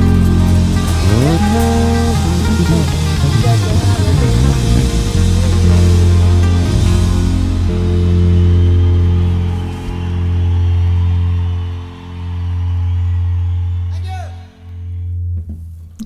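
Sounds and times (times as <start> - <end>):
band music: 0.0 - 15.9
electric bass low notes: 0.0 - 16.0.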